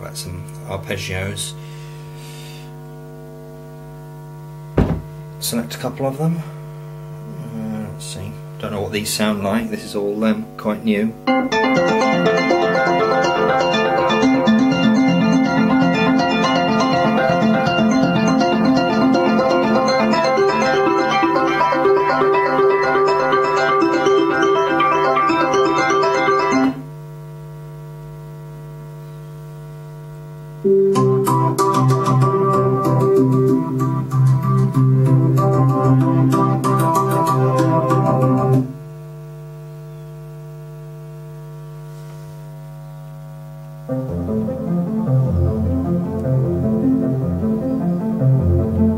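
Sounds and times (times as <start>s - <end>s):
steady electrical hum: 0.0s - 48.9s
synthesizer arpeggio: 9.5s - 26.8s, 43.9s - 48.9s.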